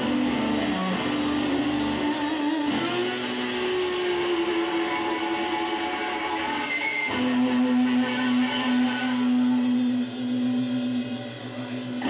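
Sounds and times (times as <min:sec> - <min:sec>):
electric guitar sustained note: 0:00.0 - 0:12.0.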